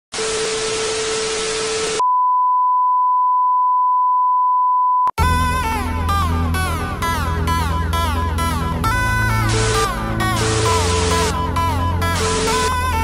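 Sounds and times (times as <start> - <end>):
tv static hiss: 0.2 - 2.0
test-card beep tone: 2.0 - 5.1
electronic music with synth notes: 5.2 - 13.0.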